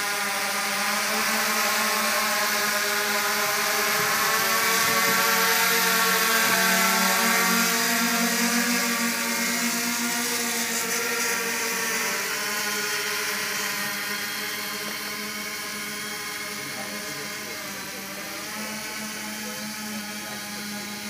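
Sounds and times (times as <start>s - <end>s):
drone motors whirring: 0.0s - 21.0s.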